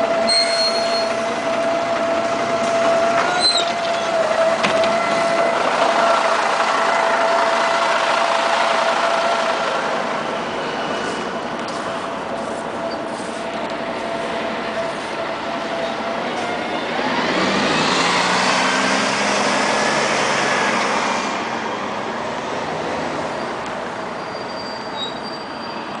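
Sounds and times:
street traffic: 0.0s - 26.0s
heavy vehicle passing: 1.2s - 24.2s.

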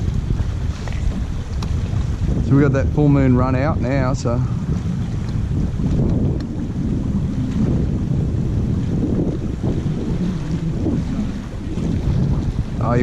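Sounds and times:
water moving around boat: 0.0s - 13.0s
wind buffeting microphone: 0.0s - 13.0s.

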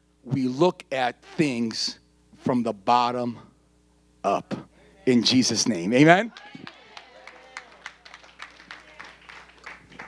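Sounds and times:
scattered light clapping: 6.3s - 10.0s.

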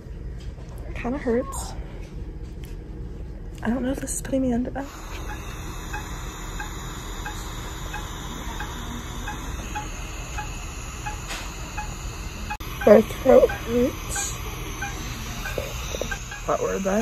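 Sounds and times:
steady room hum: 0.0s - 17.0s
patient monitor high beeps: 4.8s - 17.0s.

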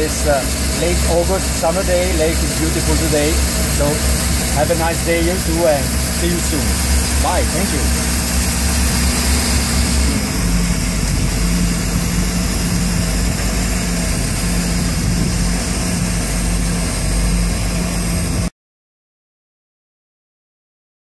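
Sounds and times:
boat engine idling: 0.0s - 18.5s.

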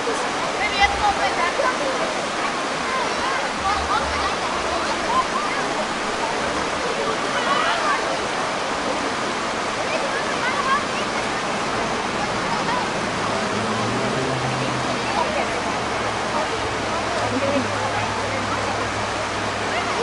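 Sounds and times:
background voices: 0.0s - 7.4s
water rushing over rock: 0.0s - 20.0s.

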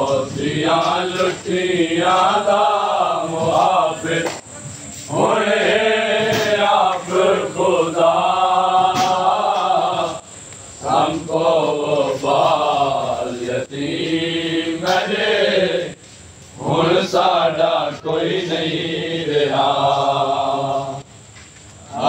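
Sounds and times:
men chanting a lament: 0.0s - 16.0s, 16.6s - 21.1s.

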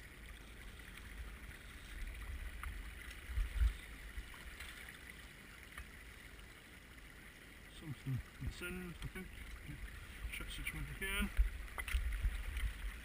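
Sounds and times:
shallow water sloshing: 0.0s - 13.0s.

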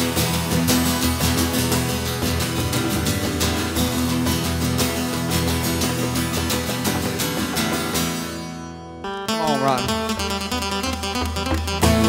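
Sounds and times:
punk band playing: 0.0s - 8.5s, 9.2s - 12.0s
strummed acoustic guitar: 0.0s - 12.0s.

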